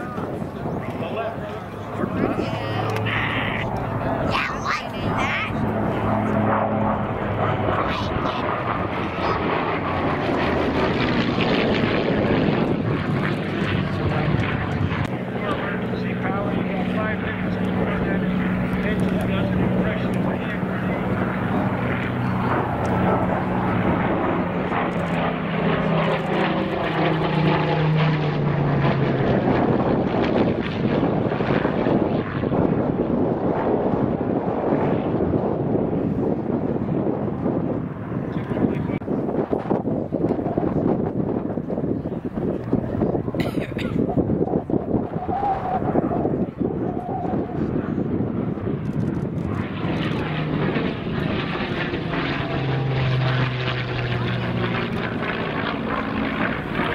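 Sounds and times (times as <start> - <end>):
propeller plane engine droning: 0.0 - 56.9.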